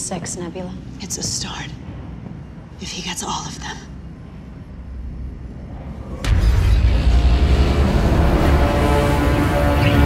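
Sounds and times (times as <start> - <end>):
low spaceship ambient hum: 0.0 - 10.0.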